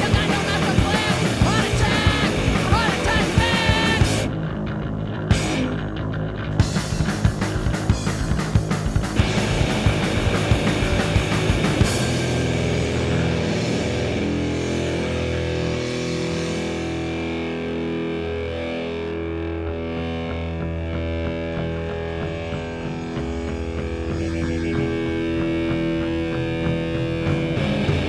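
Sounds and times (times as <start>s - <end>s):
rock guitar playing: 0.0s - 28.0s.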